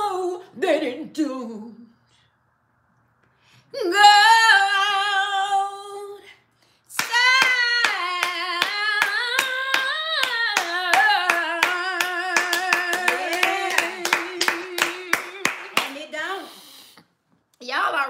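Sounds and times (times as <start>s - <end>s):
woman singing: 0.0s - 1.9s, 3.7s - 16.4s
hand clapping: 7.0s - 16.0s.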